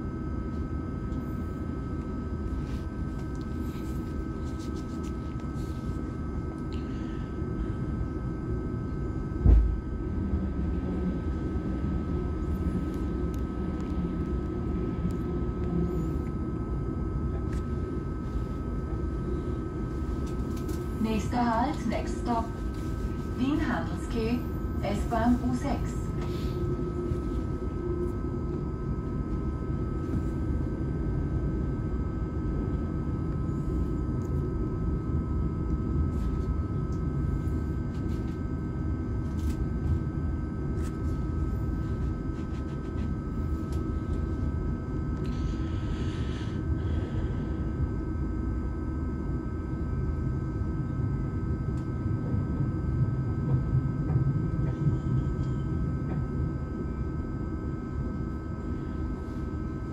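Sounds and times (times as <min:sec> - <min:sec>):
faint whining tones: 0:00.0 - 0:59.9
train rumbling along track: 0:09.4 - 0:16.3, 0:51.8 - 0:56.3.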